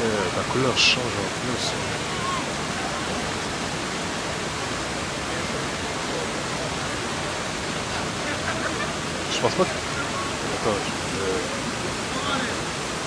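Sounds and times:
faint voices: 0:00.0 - 0:13.0
fountain water splashing: 0:00.0 - 0:13.0.

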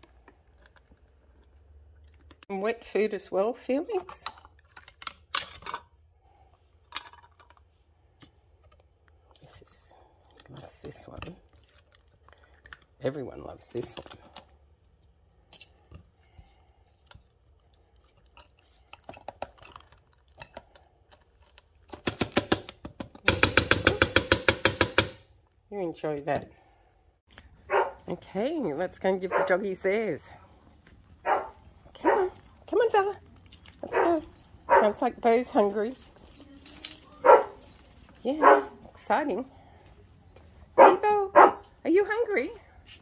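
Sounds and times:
cat crunching dry kibble: 0:08.8 - 0:15.9, 0:16.8 - 0:22.2, 0:30.5 - 0:35.0.

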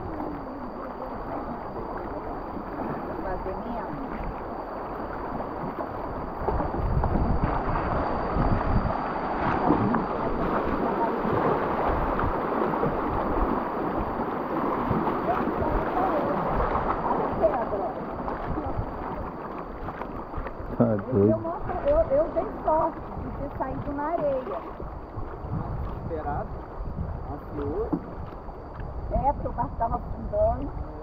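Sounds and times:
river water rushing and gurgling: 0:00.0 - 0:26.2
wind on microphone: 0:00.0 - 0:31.0.

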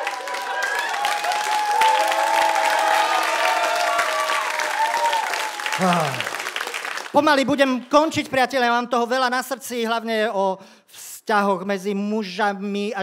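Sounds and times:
audience applauding: 0:00.0 - 0:08.2.

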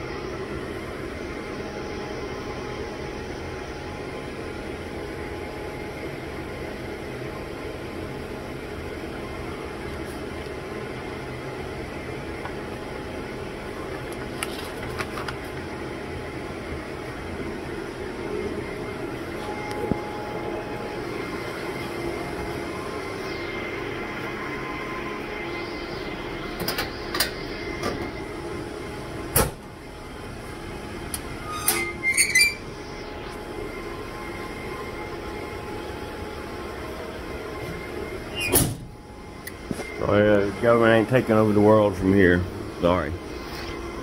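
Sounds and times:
air conditioning and fans whirring: 0:00.0 - 0:44.0.

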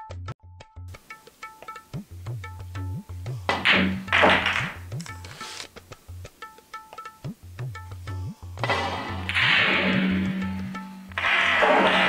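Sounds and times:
tabla and sitar music: 0:00.0 - 0:12.0
pool balls dropping into pocket: 0:03.5 - 0:04.8.

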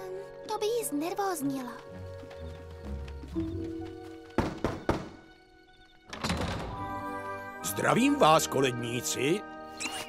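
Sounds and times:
soft background music: 0:00.0 - 0:10.0
knocks on wooden door: 0:04.4 - 0:05.3.

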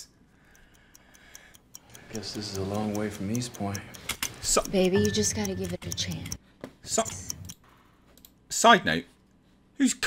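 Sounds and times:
faint regular ticking: 0:00.0 - 0:08.7.

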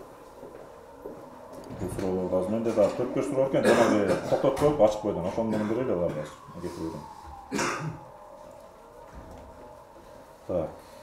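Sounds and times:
person clearing throat: 0:03.6 - 0:04.6, 0:05.5 - 0:05.9, 0:07.5 - 0:08.0.

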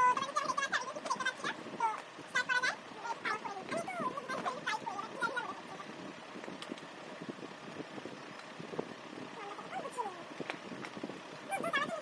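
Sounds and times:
girl speaking: 0:00.0 - 0:05.9, 0:09.3 - 0:10.4, 0:11.5 - 0:12.0.

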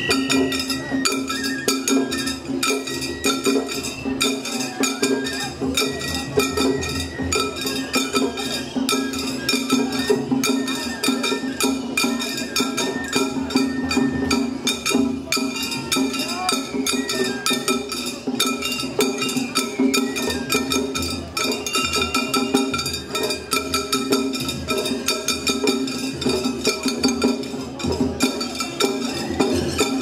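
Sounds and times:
hand-held metal gongs ringing: 0:00.0 - 0:30.0
taiko drumming: 0:00.0 - 0:30.0.

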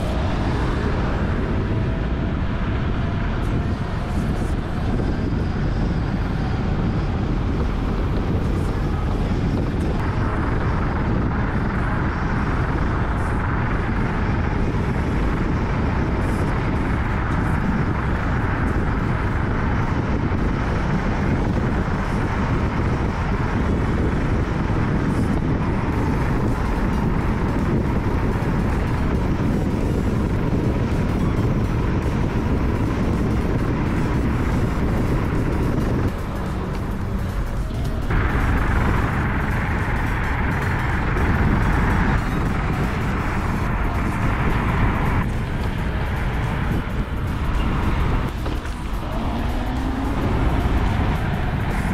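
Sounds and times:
road noise: 0:00.0 - 0:51.9
wind rushing: 0:00.0 - 0:51.9.

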